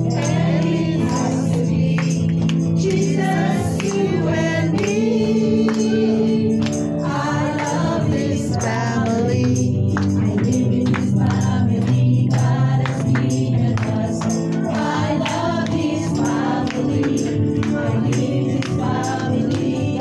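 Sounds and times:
group singing gospel song: 0.0 - 20.0
instrumental backing: 0.0 - 20.0
steady percussion beat: 0.0 - 20.0.

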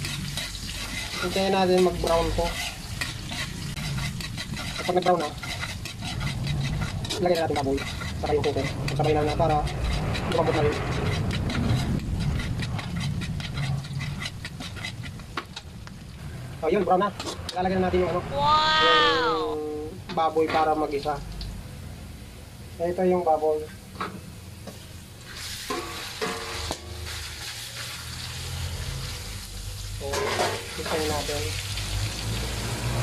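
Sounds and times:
metal spatula scraping wok: 0.0 - 15.7, 16.8 - 19.6, 24.7 - 29.4, 30.0 - 31.6
frying in hot oil: 0.0 - 33.0
metal container clanking on wok: 25.6 - 27.5, 30.0 - 31.6.

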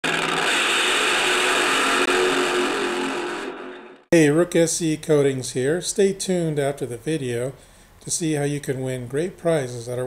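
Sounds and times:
loud mechanical rushing noise: 0.0 - 4.1.

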